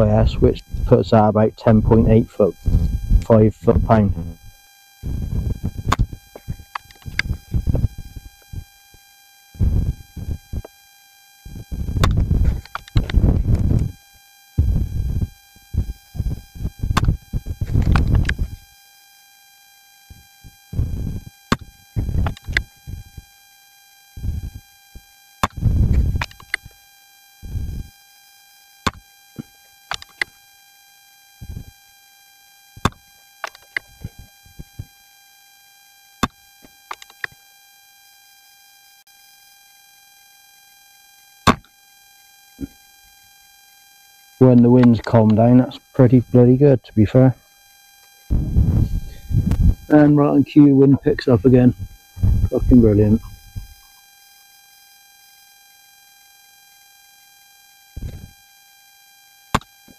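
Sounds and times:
high electronic whine: 0:00.0 - 0:30.6, 0:31.2 - 0:35.1, 0:36.1 - 0:37.4, 0:41.4 - 0:41.7, 0:44.4 - 0:55.6, 0:57.8 - 0:58.6
wind buffeting microphone: 0:02.6 - 0:04.4, 0:05.0 - 0:06.6, 0:48.3 - 0:49.9, 0:51.8 - 0:53.7
sharp clicks: 0:06.7 - 0:07.4, 0:12.0 - 0:13.9, 0:17.0 - 0:18.4, 0:25.4 - 0:26.7, 0:29.9 - 0:30.3, 0:36.2 - 0:37.4.

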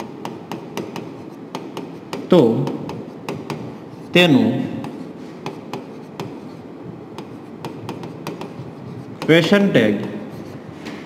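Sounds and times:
stylus tapping on screen: 0:07.2 - 0:08.6.

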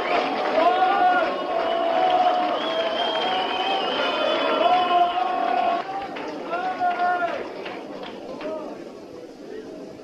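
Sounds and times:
long drawn-out shout: 0:00.0 - 0:07.5
crowd noise: 0:00.0 - 0:10.0.

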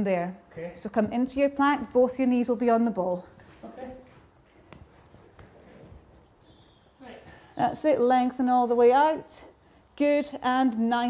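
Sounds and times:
hands and feet shuffling on mats: 0:03.0 - 0:07.7.

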